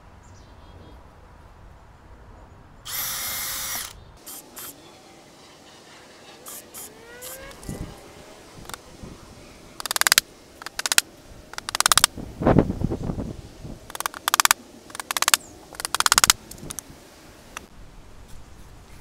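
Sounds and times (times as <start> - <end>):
rattling bursts of power tool: 2.9 - 4.8, 6.4 - 7.8, 9.8 - 11.0, 11.6 - 12.1, 13.9 - 16.8.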